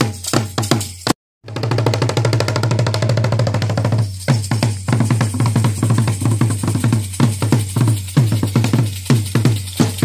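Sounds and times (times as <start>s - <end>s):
drums beaten with sticks: 0.0s - 10.0s.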